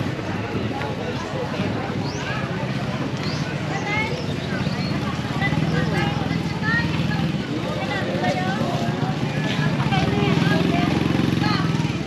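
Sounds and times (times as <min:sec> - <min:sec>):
voices of shoppers and vendors: 0:00.0 - 0:12.0
small engine running: 0:05.2 - 0:12.0.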